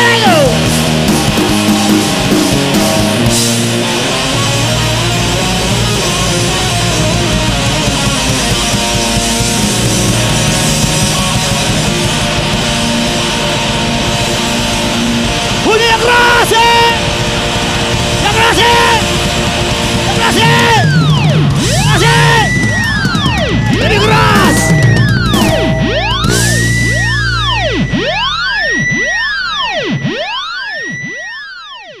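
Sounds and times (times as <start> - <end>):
rock band playing live: 0.0 - 31.2
loud held sliding notes: 0.0 - 31.3
siren-like electronic tone: 20.1 - 32.0.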